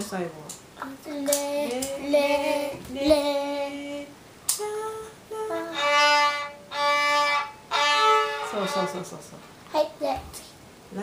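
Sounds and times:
scratchy violin strokes: 0:05.6 - 0:09.0.

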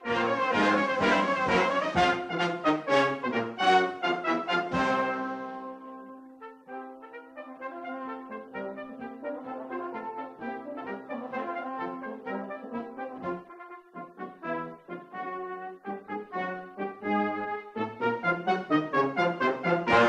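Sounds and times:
brass band playing chords: 0:00.0 - 0:20.0.

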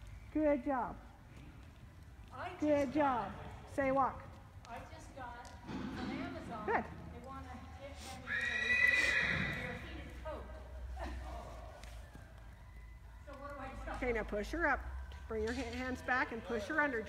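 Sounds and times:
horse whinnying: 0:08.2 - 0:09.8.

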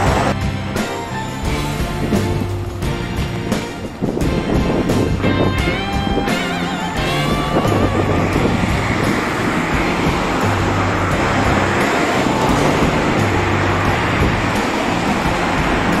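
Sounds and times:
background music with bass: 0:00.0 - 0:16.0
road traffic noise: 0:00.0 - 0:16.0.

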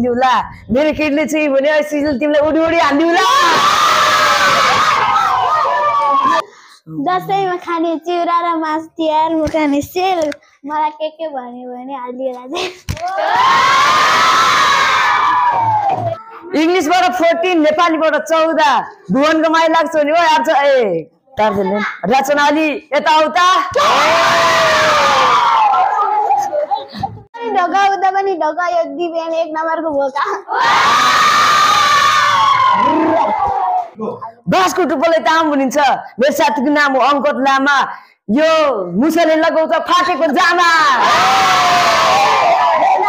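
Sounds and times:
children cheering: 0:03.2 - 0:06.4, 0:13.0 - 0:16.2, 0:23.8 - 0:26.7, 0:30.5 - 0:34.0, 0:41.0 - 0:43.0.

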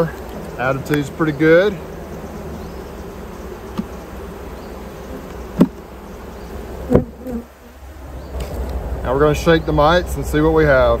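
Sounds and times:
bees buzzing: 0:00.0 - 0:11.0
sharp knocks on hive: 0:03.7 - 0:04.0, 0:05.2 - 0:05.9, 0:06.8 - 0:07.4.

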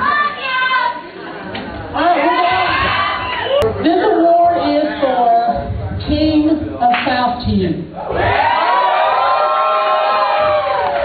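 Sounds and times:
audience whooping: 0:02.3 - 0:03.6, 0:08.1 - 0:11.0.

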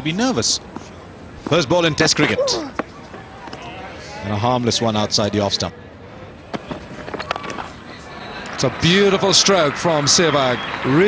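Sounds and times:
stadium crowd noise: 0:00.0 - 0:11.0
crowd clapping: 0:08.3 - 0:11.0.

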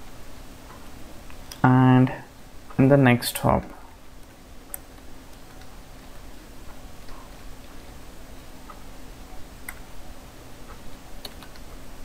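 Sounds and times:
low steady hum: 0:00.0 - 0:12.0
faint keyboard keystroke clicks: 0:11.2 - 0:11.7.

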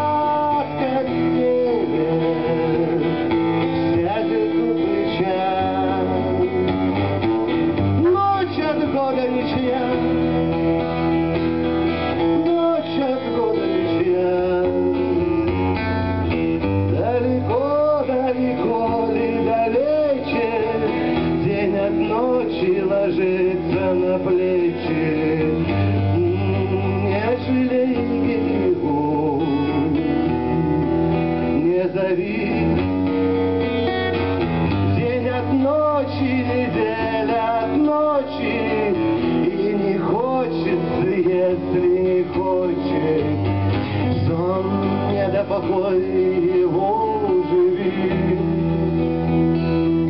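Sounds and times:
acoustic guitar chords: 0:00.0 - 0:50.0
man singing: 0:00.0 - 0:50.0.

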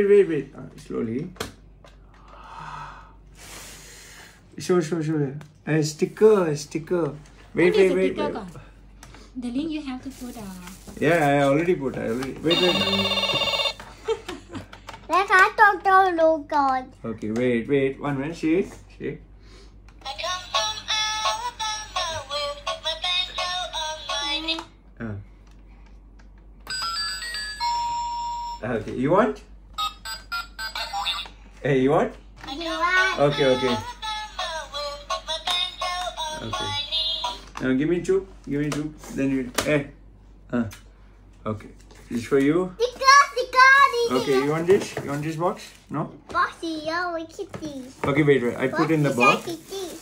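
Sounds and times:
person gasping: 0:02.2 - 0:04.5
person exhaling with a hiss: 0:02.3 - 0:04.4
toy laptop electronic tune: 0:12.5 - 0:13.8.

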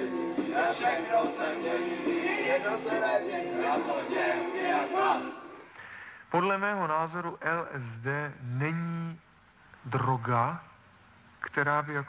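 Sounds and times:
group of voices singing: 0:00.0 - 0:05.7.

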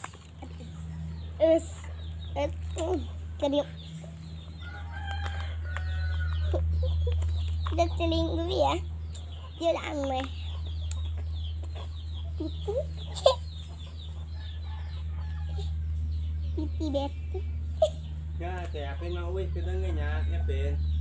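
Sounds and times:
chickens clucking: 0:00.0 - 0:21.0
steady low hum: 0:00.0 - 0:21.0.

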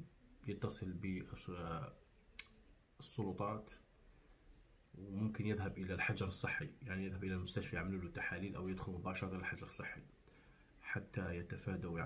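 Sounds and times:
man speaking: 0:00.0 - 0:02.0, 0:03.0 - 0:03.9, 0:05.0 - 0:10.1, 0:10.8 - 0:12.0.

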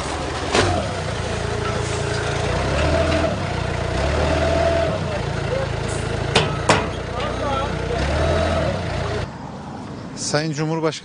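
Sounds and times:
engine idling: 0:00.0 - 0:09.3
men's voices: 0:04.8 - 0:09.2.

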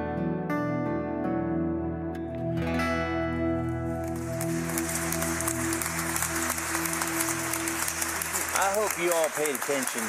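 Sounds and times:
acoustic guitar chord ringing: 0:00.0 - 0:04.1
applause: 0:03.6 - 0:10.0.

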